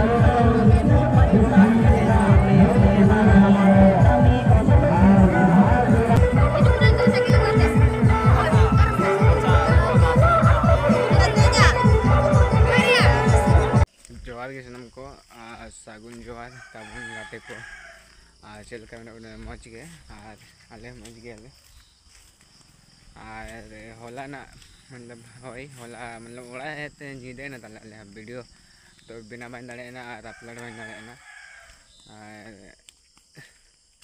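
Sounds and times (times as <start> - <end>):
man making low wordless notes: 0.0 - 13.8
man's voice: 0.0 - 17.6, 23.2 - 28.4, 29.1 - 31.2
distant rooster crowing: 16.4 - 18.2, 30.2 - 31.9.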